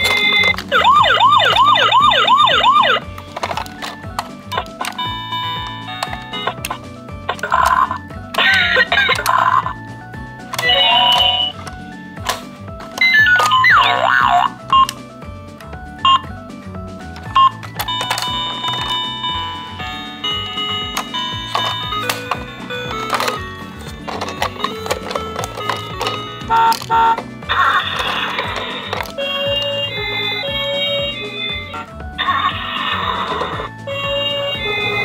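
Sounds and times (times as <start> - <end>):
toy electronic sound clips: 0.0 - 9.8, 10.4 - 15.1, 17.1 - 35.0
music track with repeating beat: 0.0 - 35.0.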